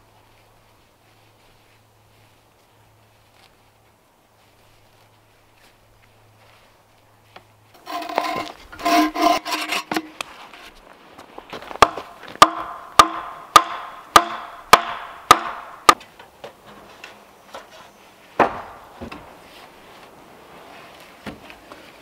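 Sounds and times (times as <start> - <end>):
wooden mallet striking log: 11.8 - 16.1, 18.4 - 19.2.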